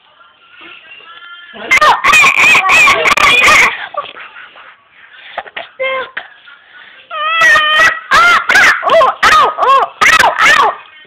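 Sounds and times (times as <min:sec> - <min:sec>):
high-pitched voice squealing: 0:01.7 - 0:03.8, 0:07.1 - 0:10.8.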